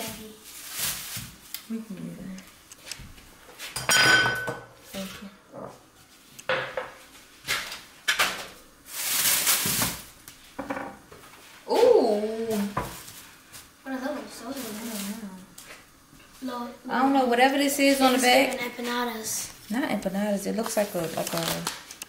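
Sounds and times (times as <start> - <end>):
pots and utensils clattering: 3.7 - 4.8
packaging rustling: 8.9 - 10.1, 20.5 - 22.0.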